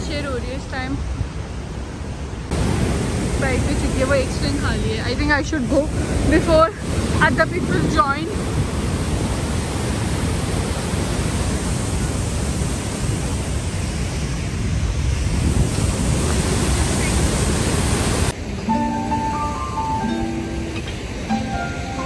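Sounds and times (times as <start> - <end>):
water rushing over a weir: 1.7 - 22.0
music: 18.5 - 22.0.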